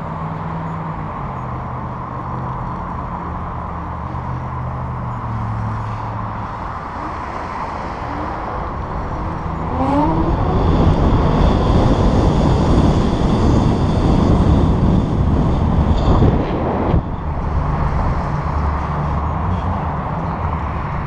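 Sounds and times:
wind buffeting microphone: 6.2 - 21.0
electric bike motor whine: 6.4 - 19.4.

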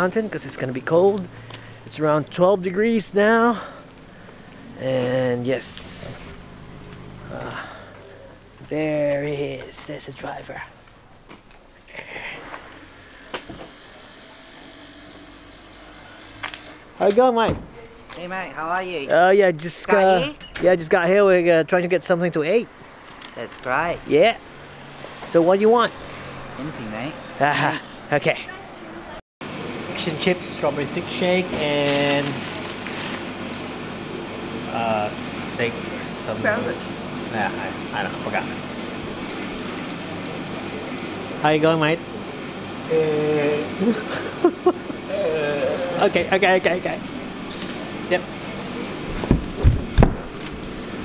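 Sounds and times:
faint car engine hum: 0.3 - 13.8.

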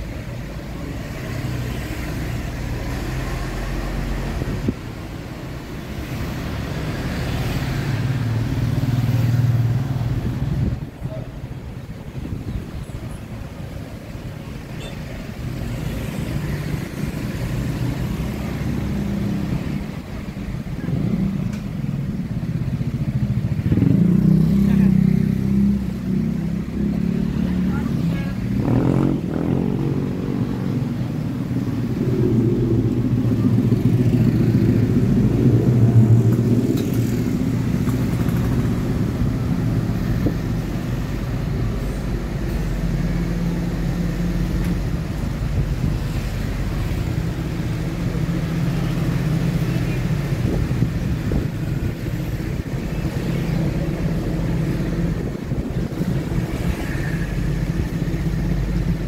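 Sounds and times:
motorcycles passing: 0.0 - 59.0
car passing: 15.2 - 59.0.

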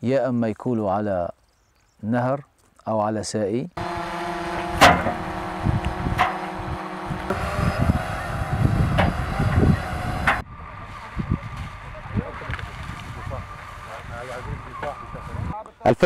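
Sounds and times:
windy outdoor hiss: 3.6 - 16.0
engine running: 3.8 - 15.3
sharp knocks: 4.6 - 6.6.

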